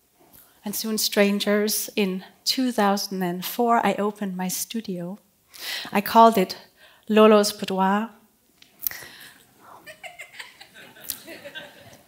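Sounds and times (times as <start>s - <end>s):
audience chuckling: 9.7s - 12.0s.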